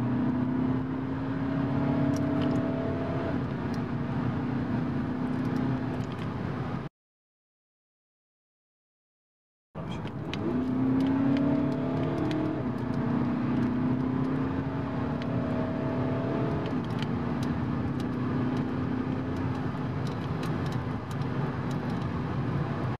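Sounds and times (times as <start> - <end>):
tyre and road noise: 0.0 - 6.9, 9.8 - 23.0
diesel engine accelerating: 9.8 - 22.1.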